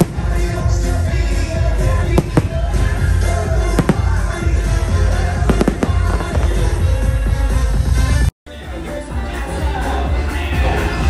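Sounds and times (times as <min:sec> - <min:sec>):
fireworks bangs: 0:00.0 - 0:07.6
loud music with heavy bass: 0:00.0 - 0:11.0.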